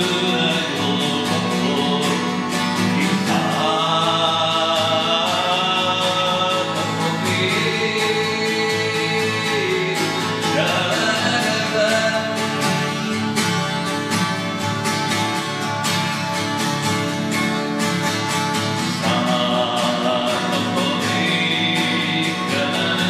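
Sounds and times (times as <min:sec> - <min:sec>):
man singing: 0:00.0 - 0:14.6, 0:18.8 - 0:23.0
acoustic guitar strumming chords: 0:00.0 - 0:23.0.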